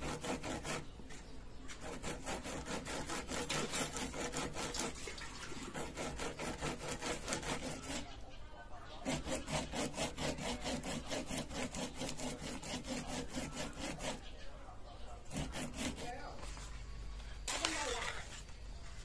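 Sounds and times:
corn rasping on metal grater: 0:00.0 - 0:01.0, 0:01.7 - 0:08.3, 0:08.9 - 0:14.4, 0:15.1 - 0:16.4.

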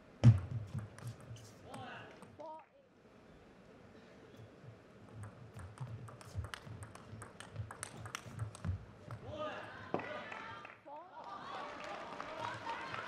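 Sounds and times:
table tennis ball clicking: 0:05.1 - 0:09.2.

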